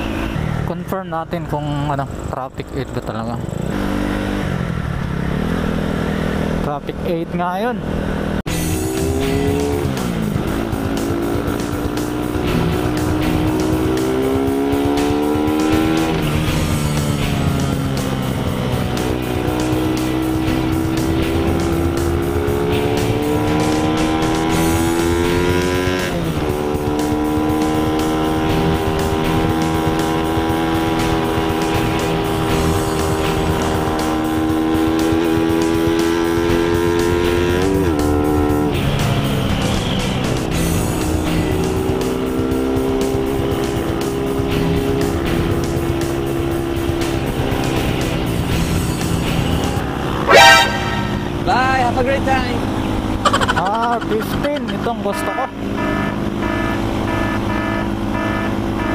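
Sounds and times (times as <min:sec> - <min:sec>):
motorcycle engine upshifting: 0:07.8 - 0:58.8.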